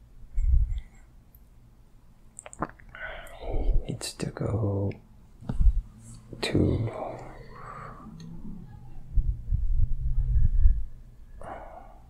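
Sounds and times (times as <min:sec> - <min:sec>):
mouth clicks: 0:02.3 - 0:03.4
man whispering softly: 0:02.9 - 0:05.0, 0:06.3 - 0:08.4.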